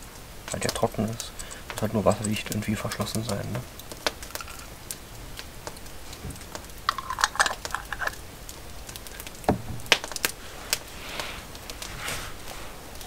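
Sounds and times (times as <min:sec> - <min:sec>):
campfire crackling and popping: 0:00.0 - 0:13.0.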